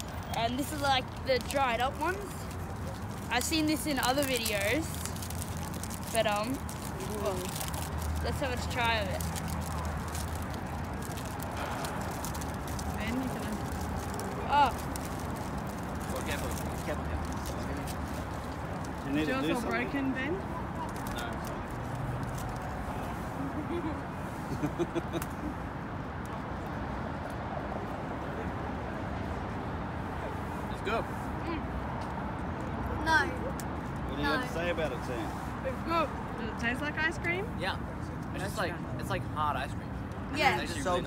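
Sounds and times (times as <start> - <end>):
wrapper crinkling: 0.0 - 19.3.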